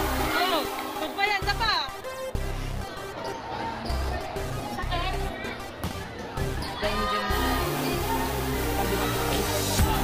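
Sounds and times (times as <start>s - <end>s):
background music with bass: 0.0s - 3.2s, 3.9s - 10.0s
crowd voices: 0.0s - 10.0s.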